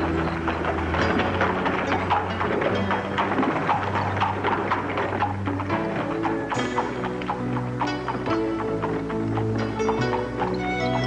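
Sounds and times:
fast rhythmic clatter: 0:00.0 - 0:11.0.

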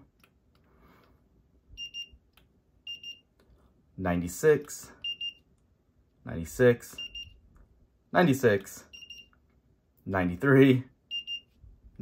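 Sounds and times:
thermometer gun beeping: 0:01.8 - 0:02.2, 0:02.9 - 0:03.3, 0:05.0 - 0:05.5, 0:06.9 - 0:07.4, 0:08.9 - 0:09.4, 0:11.1 - 0:11.6.

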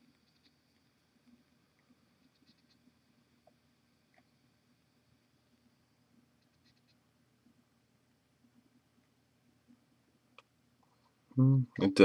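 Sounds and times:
low steady hum: 0:00.0 - 0:12.0
faint ticks: 0:00.1 - 0:04.6.

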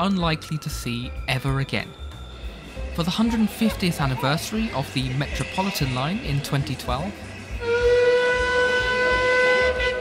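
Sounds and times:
steam locomotive whistle: 0:07.5 - 0:10.0.

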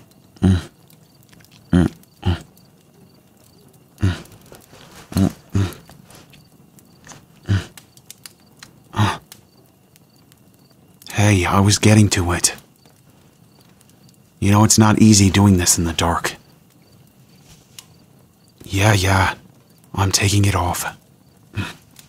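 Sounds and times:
man moaning and grunting: 0:00.4 - 0:00.8, 0:01.7 - 0:02.5, 0:04.0 - 0:04.4, 0:05.1 - 0:05.8, 0:07.4 - 0:07.8, 0:08.9 - 0:09.2
faint small clicks: 0:00.8 - 0:01.7.

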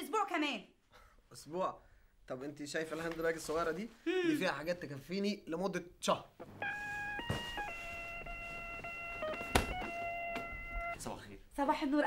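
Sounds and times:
electronic doorbell melody: 0:06.6 - 0:11.2.

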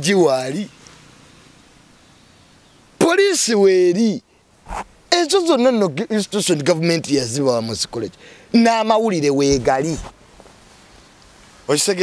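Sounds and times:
man speaking loudly: 0:00.0 - 0:00.7, 0:03.0 - 0:04.2, 0:05.1 - 0:10.1
faint background hiss: 0:00.0 - 0:12.0.

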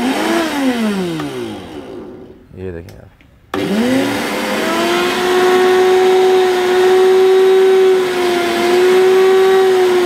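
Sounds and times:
blender motor spinning down: 0:00.0 - 0:02.4, 0:03.5 - 0:10.0.

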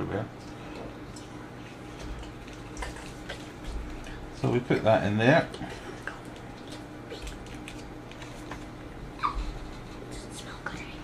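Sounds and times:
faint whispering: 0:10.1 - 0:11.0.

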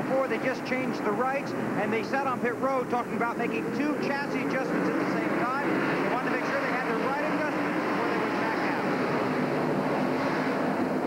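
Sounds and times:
person talking: 0:00.0 - 0:09.0
race car engines droning: 0:00.0 - 0:11.0.

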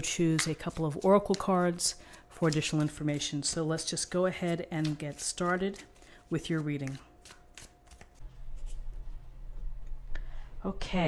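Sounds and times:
low steady hum: 0:00.0 - 0:11.0
cards being shuffled: 0:00.1 - 0:08.9.

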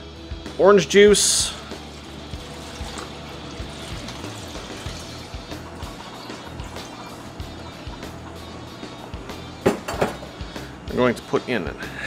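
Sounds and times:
background music: 0:00.0 - 0:12.0
juice pouring into plastic bowl: 0:01.3 - 0:07.7.

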